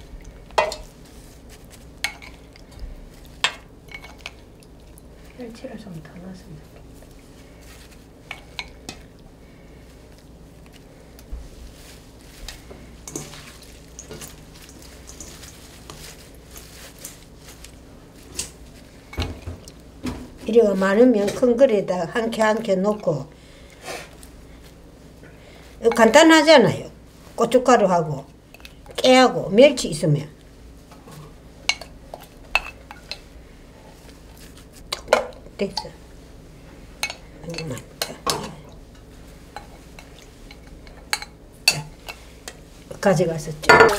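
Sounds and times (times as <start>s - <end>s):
leaves rustling in a bowl: 0.0s - 43.9s
glass and utensils clinking on metal bowl: 0.6s - 0.9s, 3.4s - 4.4s, 13.0s - 16.8s, 31.7s - 33.2s, 37.0s - 38.6s, 39.5s - 42.2s, 43.6s - 43.9s.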